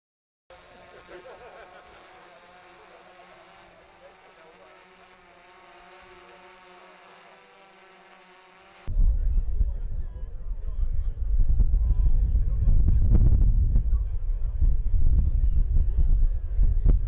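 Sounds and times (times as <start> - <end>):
drone propellers buzzing: 0.5 - 8.9
wind rumble on microphone: 8.9 - 17.0.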